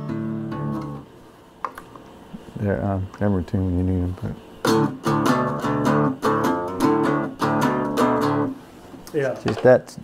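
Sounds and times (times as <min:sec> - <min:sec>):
acoustic guitar chord strummed: 0:00.0 - 0:01.0, 0:04.6 - 0:08.6.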